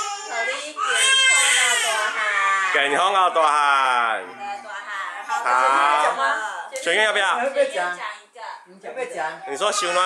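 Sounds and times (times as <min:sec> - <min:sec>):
baby crying: 0:00.0 - 0:03.2, 0:09.6 - 0:10.0.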